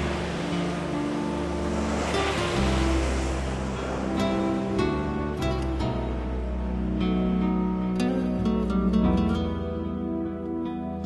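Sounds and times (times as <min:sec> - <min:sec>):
sea surf washing onto beach: 0:00.0 - 0:08.2
wave crashing: 0:00.0 - 0:08.2
background music with low held notes: 0:00.0 - 0:11.0.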